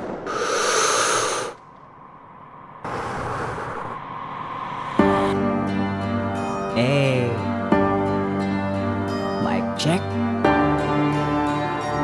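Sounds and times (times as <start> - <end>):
loud whoosh of rushing noise: 0.0 - 6.4.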